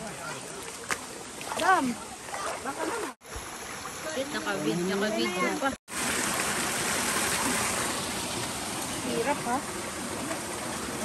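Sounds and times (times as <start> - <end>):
stream flowing over stones: 0.0 - 11.0.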